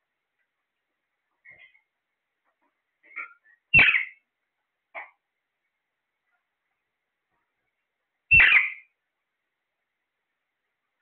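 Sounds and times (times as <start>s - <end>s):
parakeets squawking: 3.2s - 4.2s, 8.3s - 8.9s.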